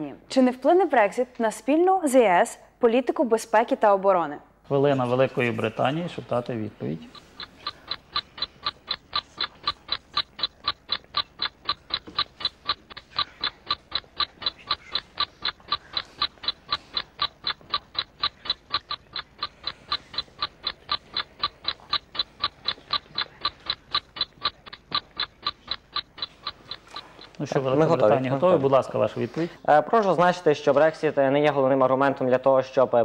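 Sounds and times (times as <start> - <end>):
countdown timer ticking: 5.4 - 29.1.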